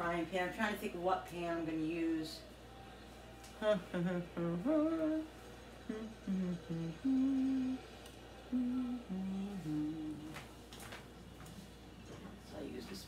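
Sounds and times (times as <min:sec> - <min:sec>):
woman humming: 0:03.6 - 0:07.9, 0:08.5 - 0:10.4.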